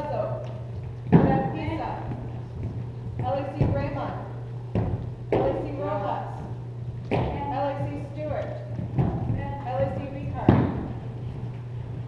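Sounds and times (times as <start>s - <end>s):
boot stamping on wooden floor: 0.8s - 5.6s, 7.0s - 12.0s.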